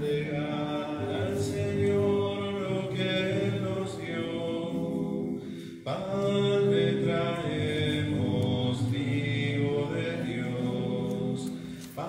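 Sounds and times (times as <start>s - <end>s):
slow sung hymn: 0.0s - 12.0s.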